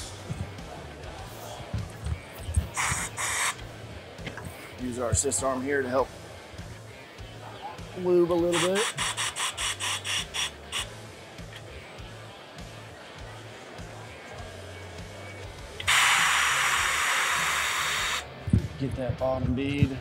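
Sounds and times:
background music with low beat: 0:00.0 - 0:20.0
compressed air hissing: 0:02.7 - 0:03.6, 0:08.5 - 0:10.9, 0:15.8 - 0:18.2.

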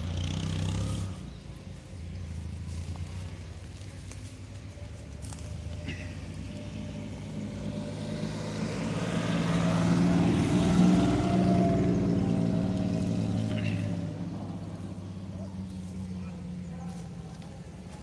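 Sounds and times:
truck engine driving past: 0:00.0 - 0:18.0.

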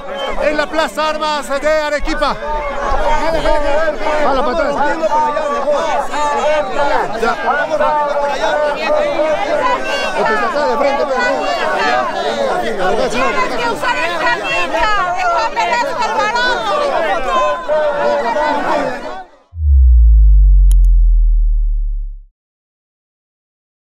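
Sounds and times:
crowd chatter: 0:00.0 - 0:19.4
deep bass boom falling tone: 0:19.6 - 0:22.3.

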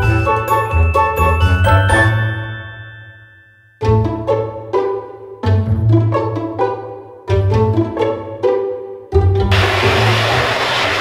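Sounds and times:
electric hand dryer blowing: 0:09.5 - 0:11.0.

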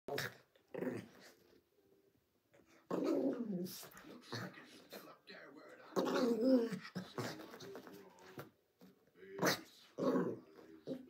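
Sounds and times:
dog growling: 0:00.1 - 0:01.4, 0:02.7 - 0:05.0, 0:05.8 - 0:07.8, 0:09.4 - 0:11.0.

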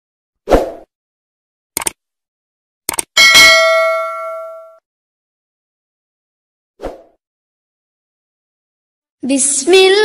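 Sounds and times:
quick double clicks: 0:01.8 - 0:02.0, 0:02.9 - 0:03.1
bright bell ding: 0:03.2 - 0:04.8.

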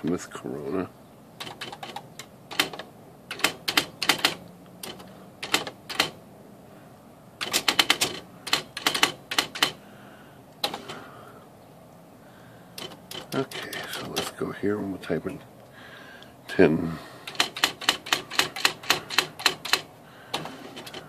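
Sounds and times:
electronic typewriter typing: 0:01.4 - 0:06.2, 0:07.4 - 0:09.8, 0:12.8 - 0:14.3, 0:17.3 - 0:21.0.

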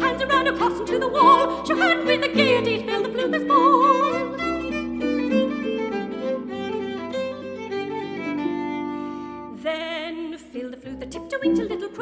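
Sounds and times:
harp accompaniment: 0:00.0 - 0:09.6
violin melody: 0:00.0 - 0:12.0.

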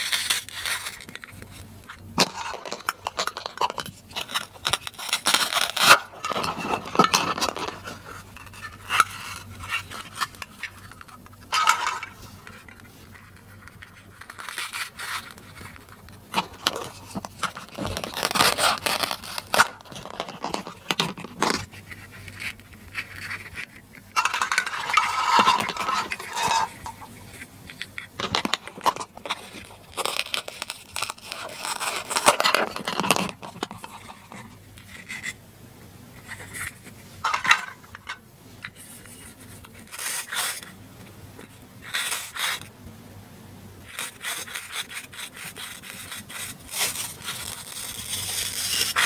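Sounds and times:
plastic toy pieces clattering: 0:02.2 - 0:21.7, 0:22.3 - 0:27.1, 0:27.7 - 0:35.3, 0:36.3 - 0:39.1
velcro ripping: 0:16.4 - 0:21.5, 0:43.9 - 0:49.0.

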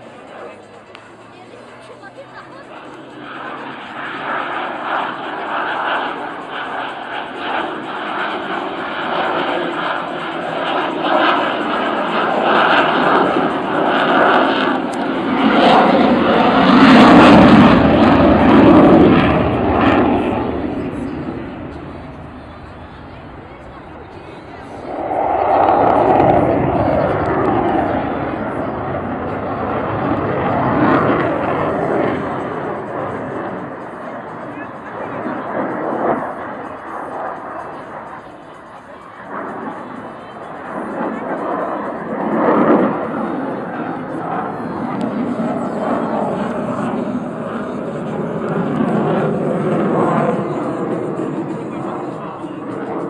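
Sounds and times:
aircraft engine passing overhead: 0:00.0 - 0:53.0.

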